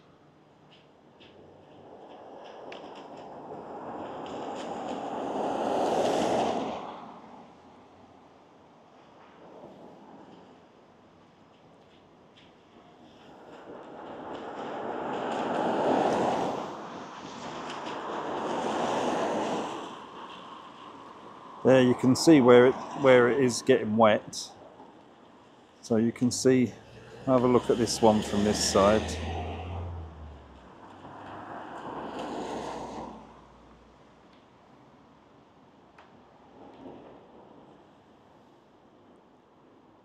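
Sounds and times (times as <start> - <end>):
vehicles passing: 14.0 - 24.9, 25.8 - 34.3.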